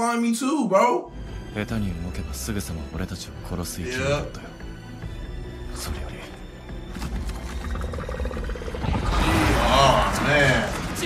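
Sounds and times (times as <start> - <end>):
monster growling: 7.4 - 11.0.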